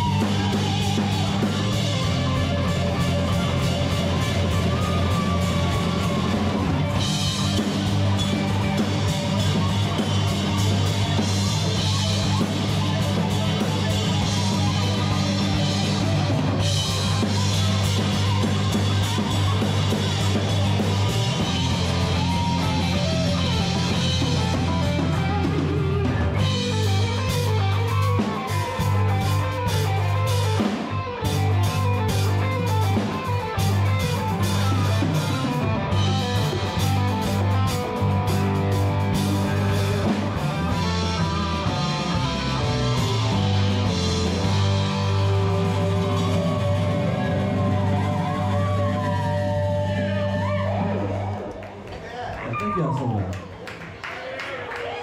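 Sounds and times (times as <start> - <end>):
drum kit: 0.0 - 51.7
bass guitar: 0.0 - 53.6
electric guitars: 0.0 - 53.9
keyboards: 0.0 - 55.0.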